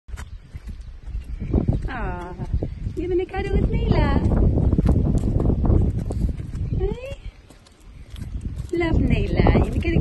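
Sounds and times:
pushchair rolling on asphalt: 0.2 - 10.0.

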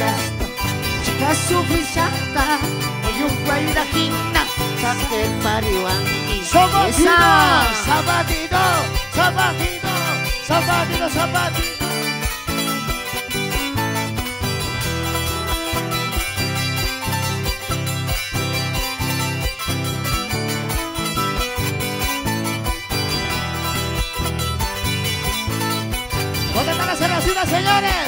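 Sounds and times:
live band playing dance music: 0.0 - 28.0.

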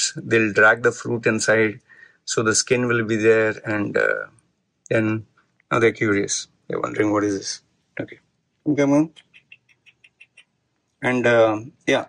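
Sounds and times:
soft mouth clicks: 9.1 - 10.5.

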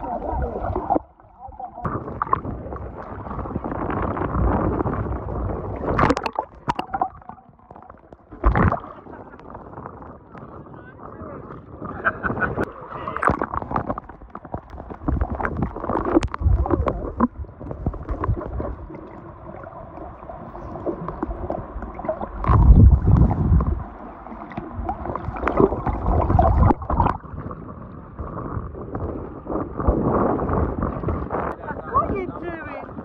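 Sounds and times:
muffled underwater rumbling: 0.0 - 33.0
water sloshing and gurgling: 0.0 - 33.0
water splashes: 0.0 - 33.0.

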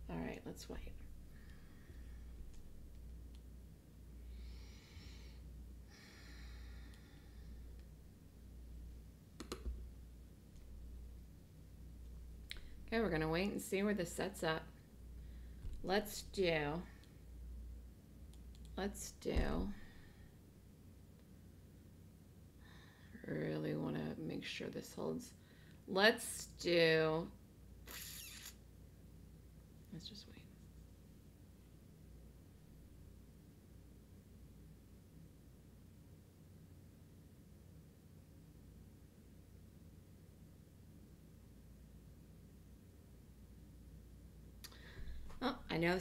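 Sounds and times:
low steady hum: 0.0 - 46.0.

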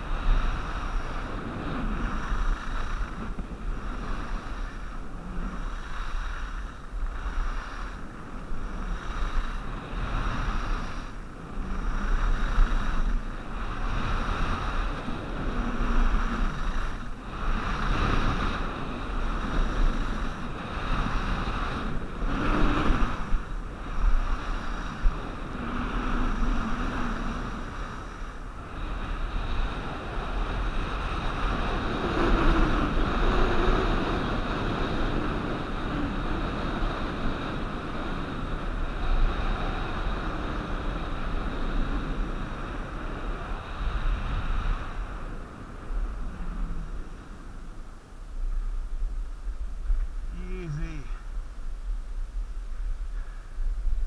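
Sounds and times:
skis scraping over snow: 0.0 - 47.7
wind buffeting microphone: 0.0 - 54.0.

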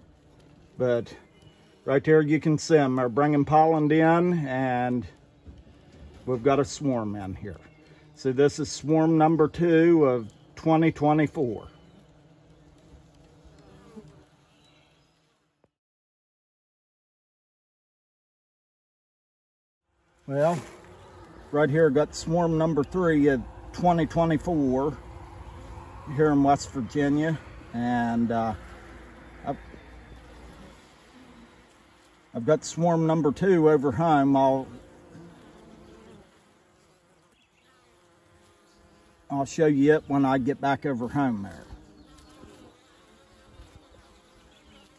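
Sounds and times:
honey bees buzzing: 0.0 - 15.6, 19.9 - 44.9.

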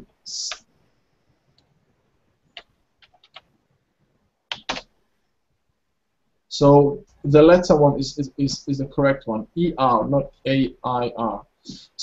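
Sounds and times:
computer keyboard keystrokes: 2.6 - 3.5, 4.5 - 4.9.

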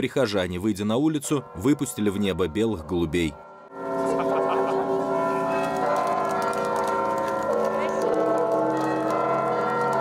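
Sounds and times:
church bells ringing: 0.2 - 10.0.

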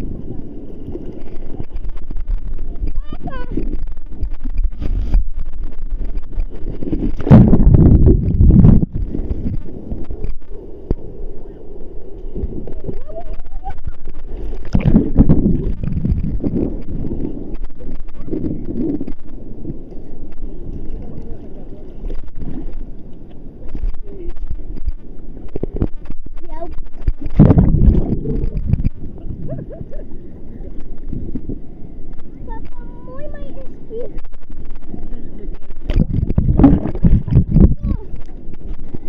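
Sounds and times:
sea water washing: 0.0 - 39.0
wind buffeting microphone: 0.0 - 39.0.

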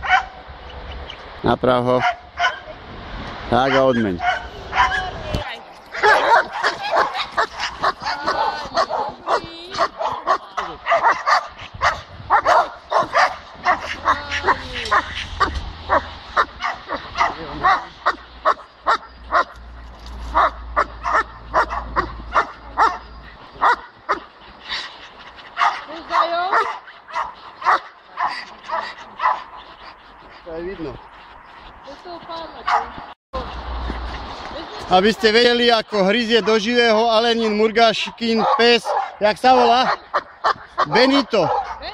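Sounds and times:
dog barking: 0.0 - 0.4, 2.0 - 2.7, 3.6 - 5.2, 5.9 - 19.6, 20.3 - 24.3, 25.6 - 29.6, 32.6 - 33.0, 38.2 - 41.9.

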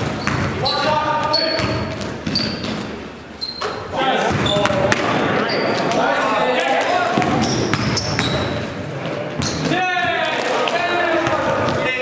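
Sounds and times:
ball bouncing on wooden court: 0.0 - 3.0, 3.6 - 5.2, 7.2 - 8.6, 9.3 - 10.2, 11.2 - 12.0
sneaker squeaks: 0.0 - 6.0, 7.2 - 10.1.

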